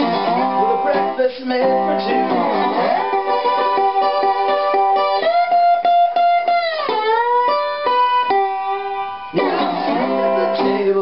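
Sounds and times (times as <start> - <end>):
resonator guitar slide notes: 0.0 - 11.0.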